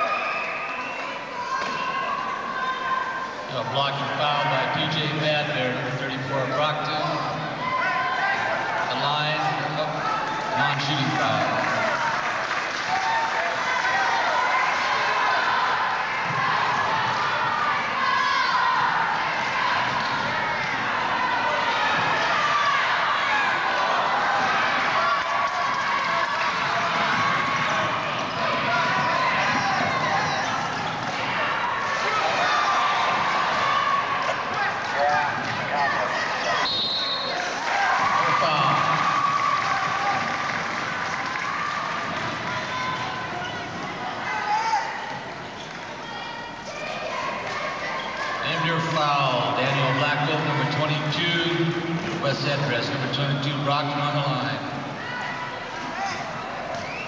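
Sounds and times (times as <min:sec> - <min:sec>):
referee whistle: 0:00.0 - 0:02.1, 0:36.6 - 0:37.5
crowd voices: 0:00.0 - 0:57.0.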